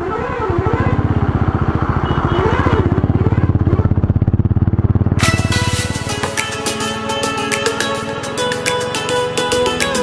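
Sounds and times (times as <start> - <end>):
motorcycle engine running: 0.0 - 9.8.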